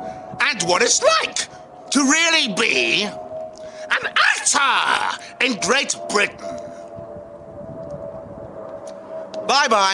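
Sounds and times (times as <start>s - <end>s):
low rumbling background: 0.0s - 9.9s.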